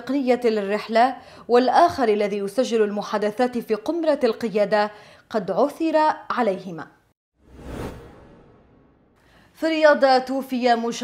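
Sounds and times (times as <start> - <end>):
whoosh with low rumble: 7.4 - 9.2.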